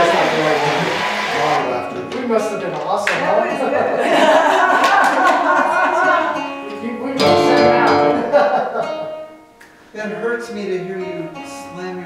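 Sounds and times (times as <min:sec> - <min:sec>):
acoustic guitar strumming: 0:00.0 - 0:03.4, 0:04.9 - 0:12.0
voices: 0:00.0 - 0:08.8.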